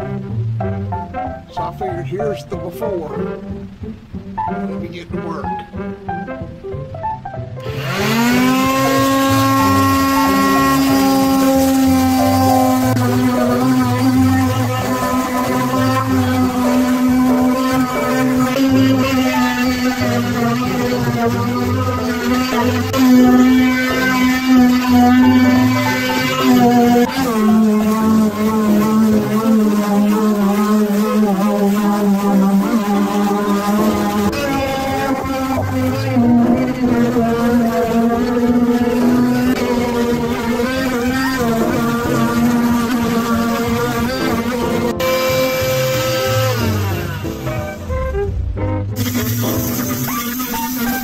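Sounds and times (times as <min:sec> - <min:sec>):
background music: 0:00.0 - 0:51.0
electric sander motor humming: 0:07.6 - 0:51.0.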